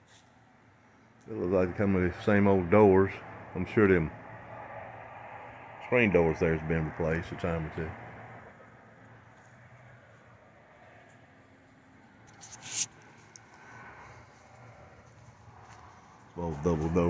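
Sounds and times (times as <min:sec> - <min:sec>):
faint outdoor background: 0:00.0 - 0:17.0.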